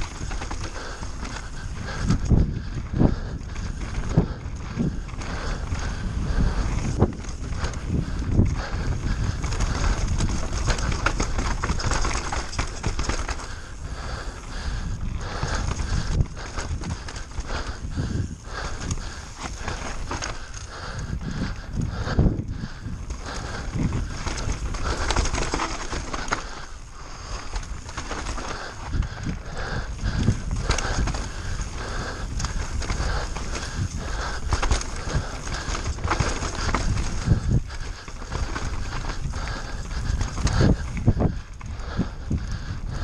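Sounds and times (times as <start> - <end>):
bike rattles and knocks: 0.0 - 43.0
tyres rumbling over dirt: 0.0 - 43.0
tyres rolling over dirt: 22.5 - 41.3.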